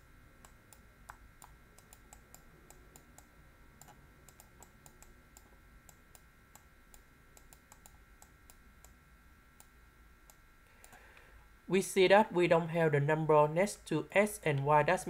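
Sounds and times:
faint steady high whine: 0.0s - 15.0s.

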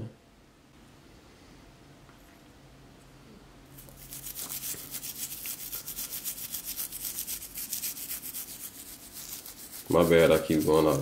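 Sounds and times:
toothbrush scrubbing: 3.8s - 11.0s.

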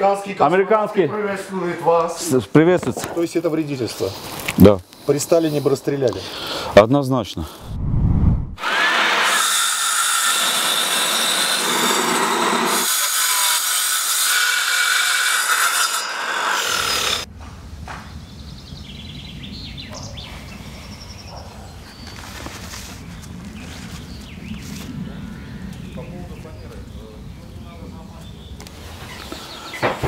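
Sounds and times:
circular saw cutting wood: 8.6s - 17.3s.

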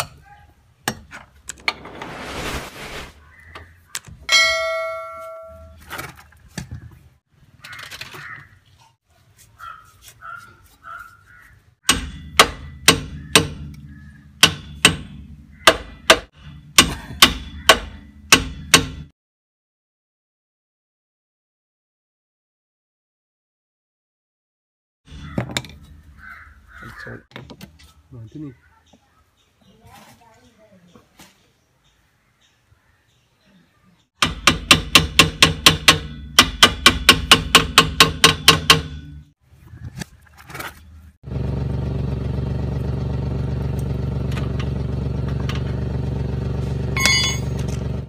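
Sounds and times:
bird cawing: 3.2s - 4.2s, 7.6s - 8.8s, 9.6s - 12.0s, 13.1s - 14.4s, 15.4s - 16.1s, 17.4s - 18.1s, 25.1s - 29.5s, 31.8s - 34.0s
metal strike ringing: 4.3s - 5.8s, 47.0s - 47.6s.

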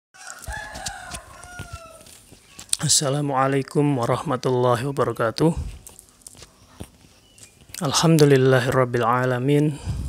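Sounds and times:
rooster crowing: 0.2s - 2.2s.

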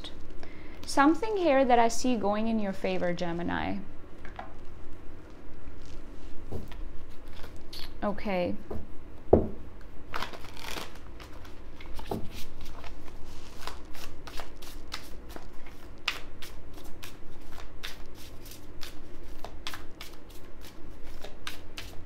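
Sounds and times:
cards being shuffled by hand: 10.1s - 22.0s.

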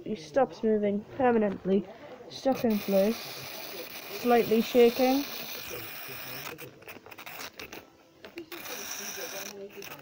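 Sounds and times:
toy clockwork motor running: 2.5s - 7.8s, 8.4s - 10.0s.

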